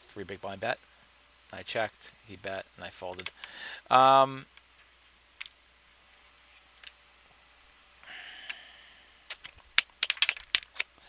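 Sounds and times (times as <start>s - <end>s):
irregular clicks: 3.1s - 3.6s, 9.2s - 11.0s.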